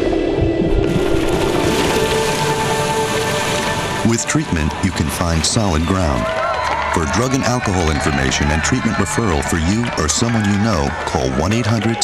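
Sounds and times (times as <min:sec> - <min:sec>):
background music with long notes: 0:00.0 - 0:08.2
ocean surf breaking: 0:00.8 - 0:06.2.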